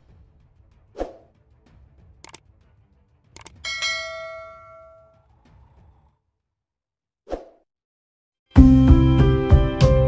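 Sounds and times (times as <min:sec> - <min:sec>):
bright bell chime: 0:03.7 - 0:05.2.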